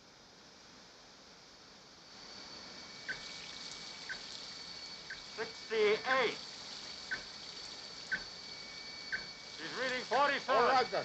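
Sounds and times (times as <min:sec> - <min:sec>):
high-pressure water jets spraying: 0:03.1 - 0:08.4, 0:09.2 - 0:11.0.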